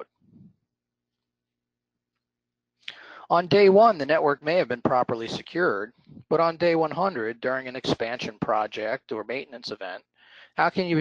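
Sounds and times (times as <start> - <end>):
man speaking: 2.9 - 11.0.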